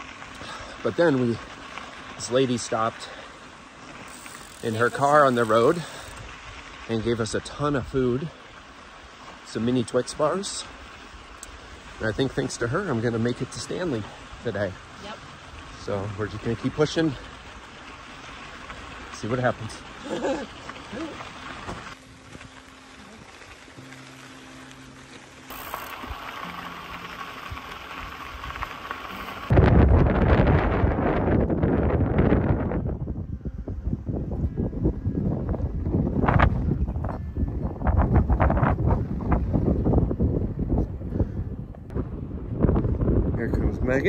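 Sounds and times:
steady hiss: 0:00.0 - 0:29.5
wind buffeting microphone: 0:27.4 - 0:44.0.

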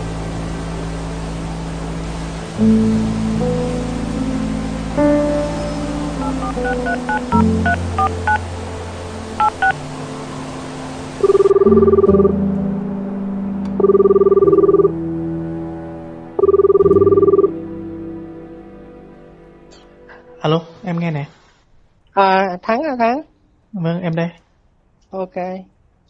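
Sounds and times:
rain-like hiss: 0:00.0 - 0:13.8
soft music: 0:00.0 - 0:21.5
phone ringing tones: 0:06.2 - 0:08.4, 0:09.4 - 0:09.8, 0:11.2 - 0:12.4, 0:13.8 - 0:15.0, 0:16.4 - 0:17.5
touch-tone keypad beeps: 0:06.3 - 0:08.4, 0:09.4 - 0:09.8, 0:11.2 - 0:12.3, 0:13.8 - 0:14.9, 0:16.4 - 0:17.5.

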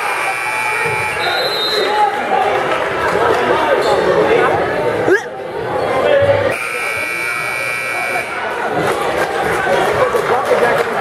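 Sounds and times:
scoreboard buzzer: 0:00.0 - 0:01.4, 0:06.5 - 0:08.5
crowd chatter in large hall: 0:00.0 - 0:11.0.

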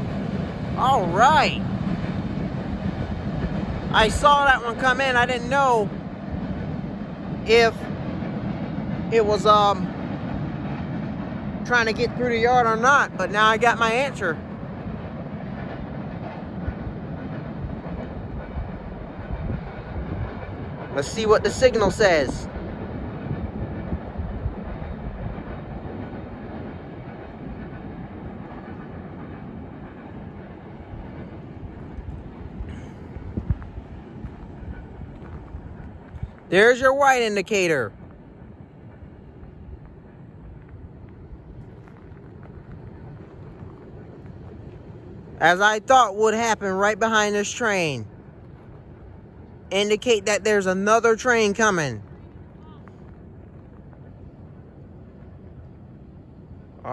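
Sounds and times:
light clacks of train cars: 0:00.0 - 0:56.9
train wheels rumbling on rail: 0:00.0 - 0:56.9.

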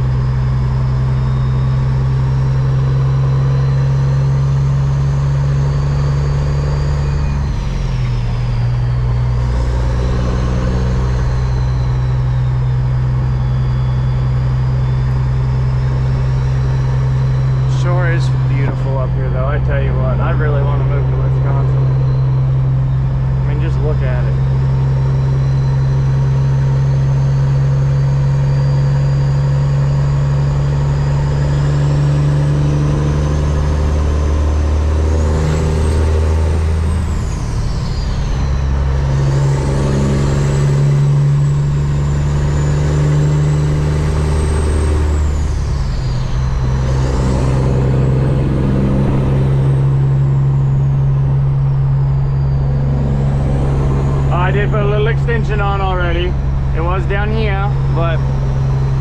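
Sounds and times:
high turbo whistle: 0:00.0 - 0:59.0
truck diesel engine pulling: 0:00.0 - 0:59.0.

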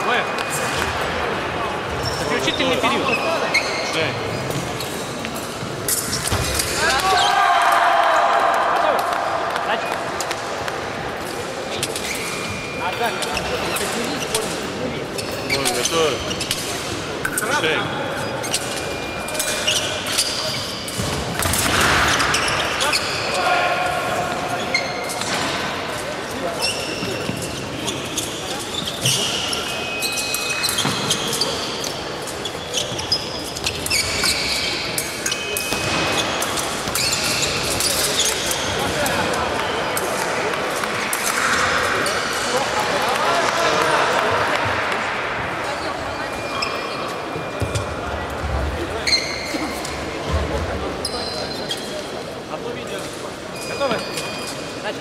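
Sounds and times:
shoe squeaks: 0:01.9 - 0:07.3, 0:11.7 - 0:16.8, 0:17.4 - 0:21.0, 0:22.1 - 0:23.5, 0:24.5 - 0:25.4, 0:26.4 - 0:40.0, 0:45.8 - 0:48.0, 0:48.9 - 0:50.0, 0:50.9 - 0:52.2, 0:53.5 - 0:54.9.

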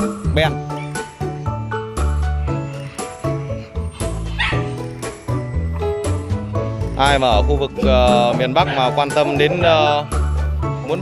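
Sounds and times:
background music: 0:00.0 - 0:11.0
dog giving high-pitched cry: 0:04.0 - 0:04.8.

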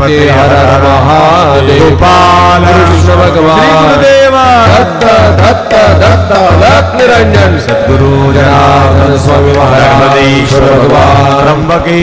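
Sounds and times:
man chanting a prayer: 0:00.0 - 0:12.0.

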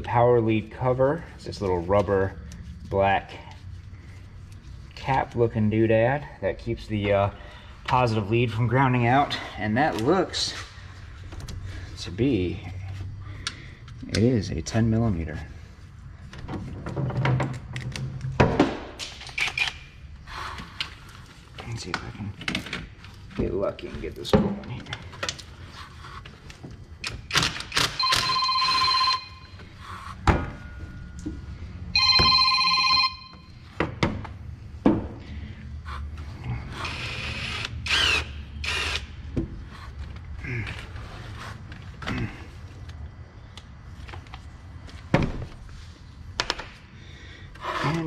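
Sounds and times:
steady ringing tone: 0:28.0 - 0:29.8, 0:30.6 - 0:33.7.

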